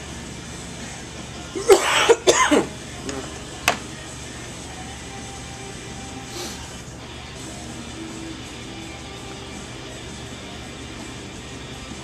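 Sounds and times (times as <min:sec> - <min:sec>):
faint background music: 0:00.0 - 0:12.0
man coughing: 0:01.6 - 0:03.3.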